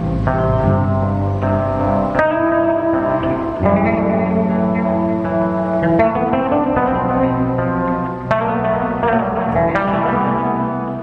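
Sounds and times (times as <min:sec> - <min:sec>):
electric bass guitar plucked notes: 0:00.0 - 0:11.0.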